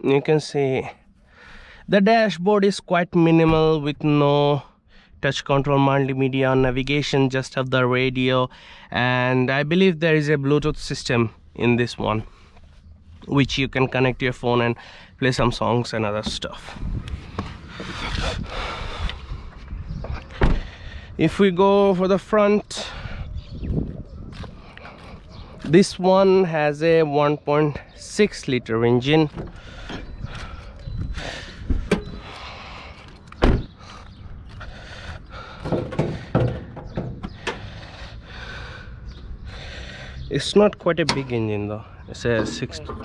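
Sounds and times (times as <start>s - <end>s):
car bonnet clunks and clicks: 20.4s - 20.6s, 29.3s - 30.2s, 31.0s - 32.4s, 33.2s - 33.7s, 35.6s - 37.7s, 41.0s - 41.4s, 42.4s - 43.0s
car door shutting: 20.4s - 20.7s, 31.5s - 32.2s, 33.4s - 33.7s
car door shutting thump: 20.4s - 20.7s, 33.4s - 33.7s.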